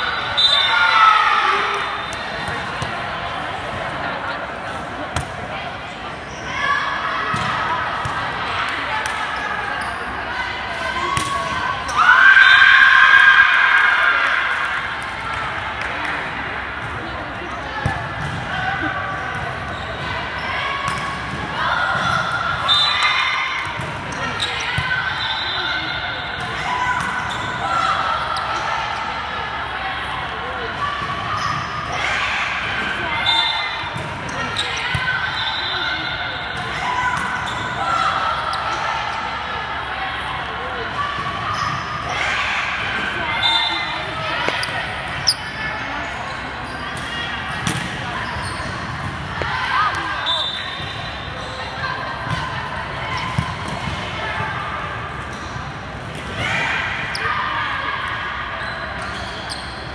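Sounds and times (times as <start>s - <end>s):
volleyball being hit and bouncing: 47.0s - 48.0s.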